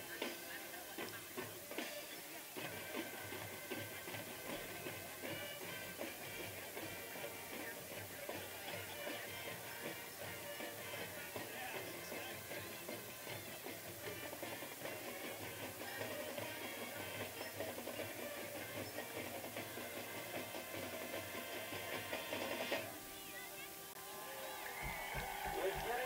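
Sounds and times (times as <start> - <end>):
distant marching band playing: 0.0 - 26.0
voices: 0.0 - 26.0.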